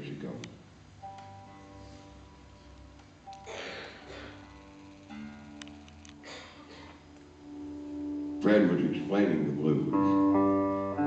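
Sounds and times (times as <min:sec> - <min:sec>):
acoustic guitar note ringing: 0:01.0 - 0:11.0.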